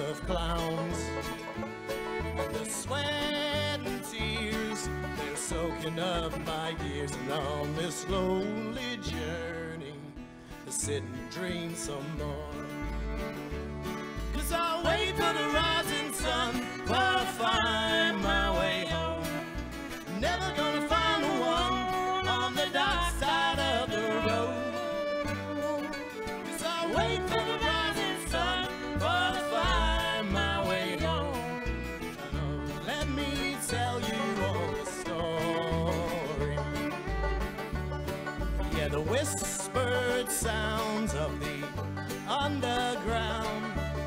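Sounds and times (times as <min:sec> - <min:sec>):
acoustic guitar: 0:00.0 - 0:44.0
banjo: 0:00.0 - 0:44.0
fiddle: 0:00.0 - 0:44.0
mandolin: 0:00.0 - 0:44.0
upright bass: 0:00.0 - 0:44.0.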